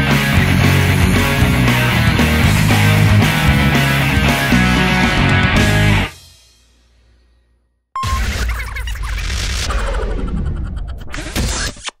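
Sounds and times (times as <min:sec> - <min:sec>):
short beep: 0:08.0 - 0:08.2
sound effects and music: 0:08.0 - 0:11.9.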